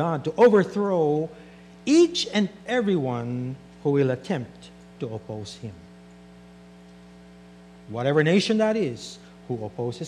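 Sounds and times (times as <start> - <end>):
man speaking: 0.0 - 5.9, 7.9 - 10.0
electrical mains hum: 0.0 - 10.0.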